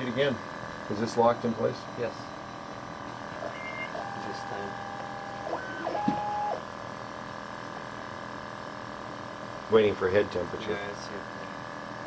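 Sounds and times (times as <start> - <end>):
steady background hum: 0.0 - 12.0
stepper motors whining: 3.3 - 6.6.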